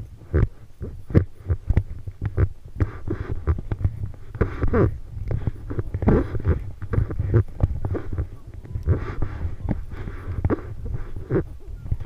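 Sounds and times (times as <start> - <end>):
low thumps and rubbing: 0.0 - 12.0
elephant breathy huff: 2.8 - 11.6.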